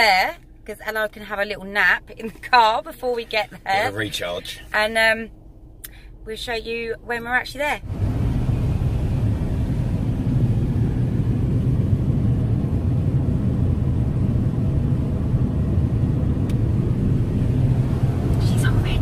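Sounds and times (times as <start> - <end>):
car cabin road rumble: 0.0 - 19.0.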